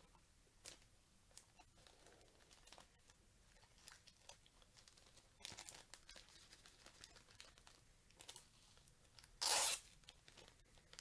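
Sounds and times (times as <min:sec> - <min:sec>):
wrapper crinkling: 0:03.7 - 0:11.0
packaging ripping: 0:09.4 - 0:11.0.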